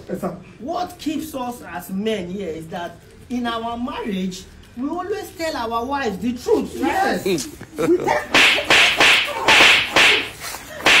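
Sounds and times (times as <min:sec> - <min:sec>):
whip lashes striking: 0:08.3 - 0:11.0.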